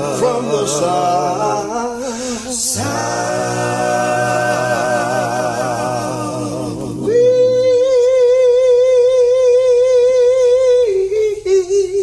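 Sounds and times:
man singing with vibrato: 0.0 - 12.0.

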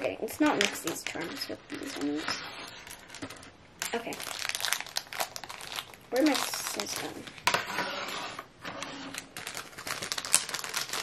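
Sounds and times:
wrapper crinkling: 0.4 - 7.5, 9.0 - 11.0.

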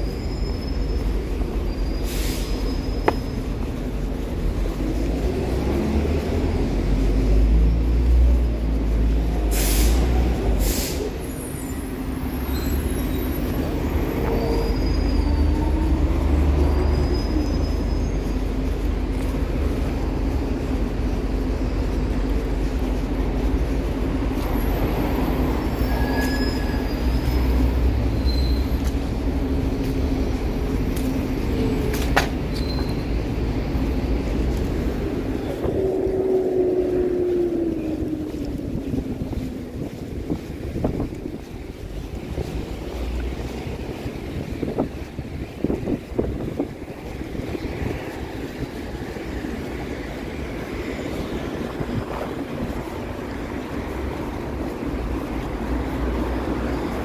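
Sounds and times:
bus diesel engine rumbling: 0.0 - 57.0
light traffic noise: 0.0 - 57.0.

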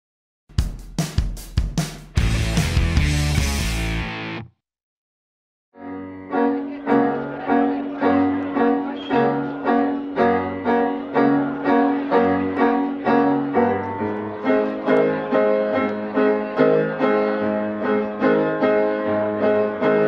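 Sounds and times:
upbeat piano music: 5.8 - 20.0.

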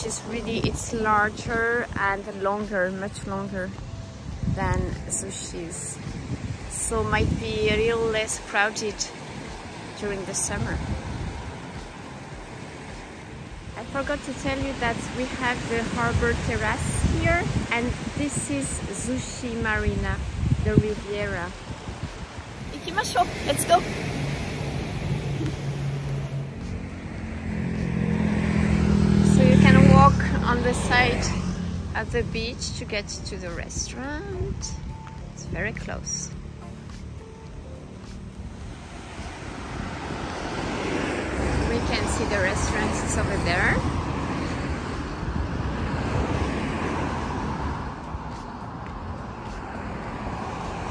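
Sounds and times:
wind buffeting microphone: 0.0 - 12.6, 13.3 - 26.6, 38.5 - 50.9
small waves washing on beach: 0.0 - 26.7, 38.5 - 50.9
car approaching: 0.0 - 50.9
road traffic: 0.0 - 50.9.

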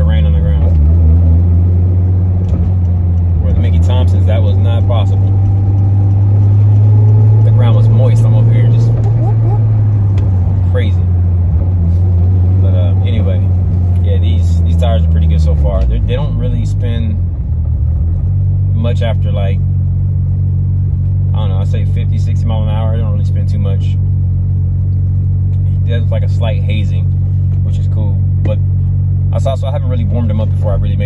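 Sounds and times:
car engine droning: 0.0 - 31.0
road noise: 0.0 - 31.0.

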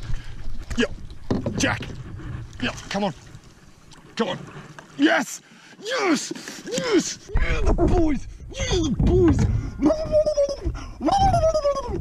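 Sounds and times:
man howling: 9.8 - 12.0.

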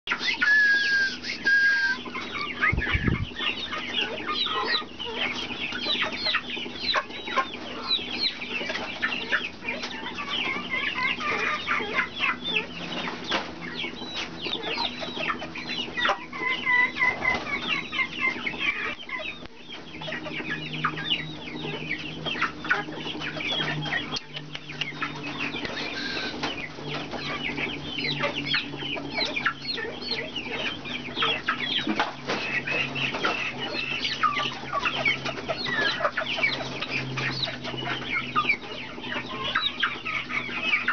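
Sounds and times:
parrot whistle: 0.2 - 2.1.

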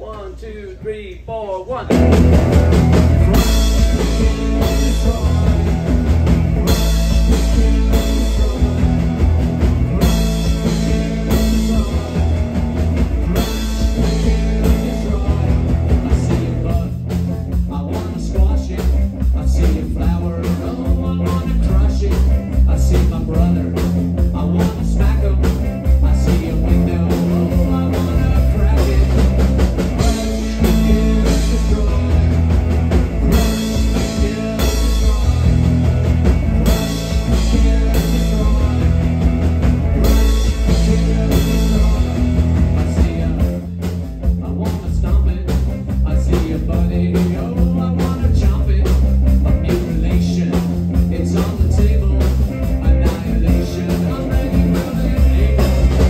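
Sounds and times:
drum kit beat: 0.0 - 56.0
electric bass line: 1.7 - 56.0
electric guitar: 1.9 - 56.0.

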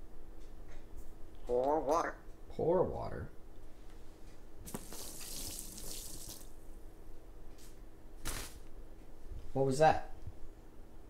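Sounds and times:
water splashing onto feathers: 4.7 - 6.5.

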